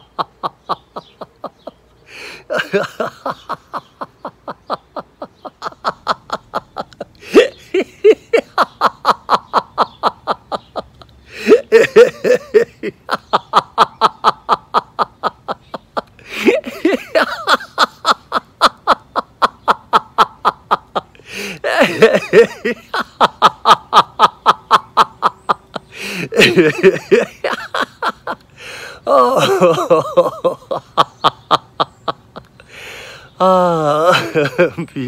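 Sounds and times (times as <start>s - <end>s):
man laughing: 0.0s - 35.0s.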